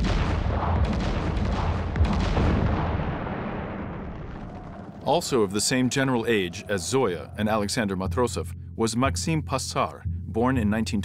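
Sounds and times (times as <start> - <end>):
heavy boom: 0.0 - 6.6
sharp blast: 0.0 - 6.6
crackle of blasts: 0.0 - 7.0
deep rumble: 0.0 - 10.7.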